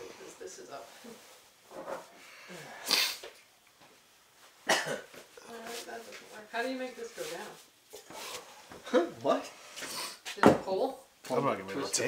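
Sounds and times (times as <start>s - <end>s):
person coughing sharply: 4.7s - 5.2s.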